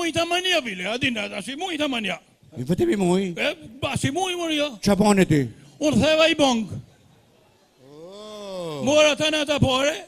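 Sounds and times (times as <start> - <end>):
man wailing into microphone: 7.8 - 9.1
man speaking: 7.9 - 10.0.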